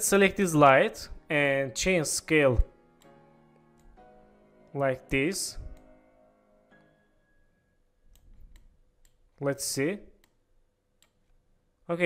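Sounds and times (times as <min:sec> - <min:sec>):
man speaking: 0:00.0 - 0:02.7, 0:04.7 - 0:05.8, 0:09.4 - 0:10.2
computer mouse clicks: 0:08.1 - 0:09.2, 0:10.2 - 0:10.4, 0:11.0 - 0:11.4.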